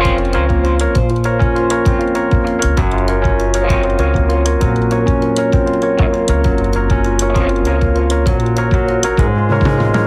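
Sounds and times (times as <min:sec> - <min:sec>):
bass line: 0:00.0 - 0:10.0
drum cymbal pattern: 0:00.0 - 0:10.0
held keyboard chords: 0:00.0 - 0:10.0.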